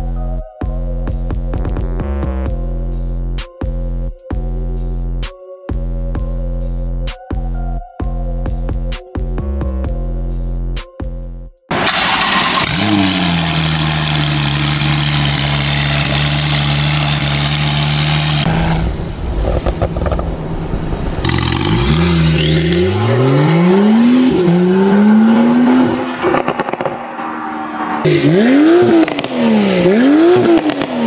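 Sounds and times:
car engine cold start idling: 0:11.7 - 0:13.3
car accelerating hard: 0:11.7 - 0:31.0.

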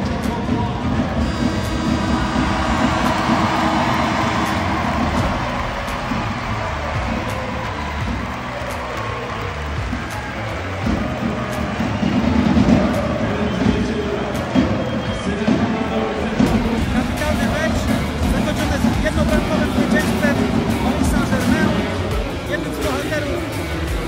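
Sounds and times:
crowd noise: 0:00.0 - 0:24.0
arena horn: 0:01.2 - 0:22.9.

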